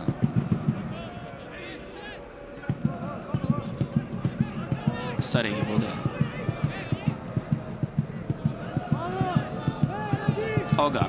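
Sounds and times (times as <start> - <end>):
rapid irregular low thumps: 0.0 - 1.1, 2.7 - 11.0
voices and shouts in stadium: 0.0 - 11.0.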